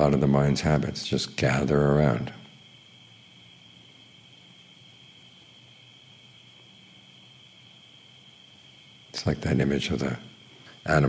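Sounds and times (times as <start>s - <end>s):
crickets trilling: 0.0s - 11.0s
faint low hum: 0.0s - 11.0s.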